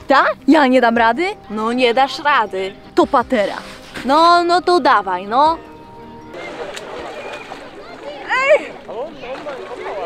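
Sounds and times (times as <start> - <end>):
water around swimmer: 5.3 - 10.0
distant voices: 5.5 - 10.0.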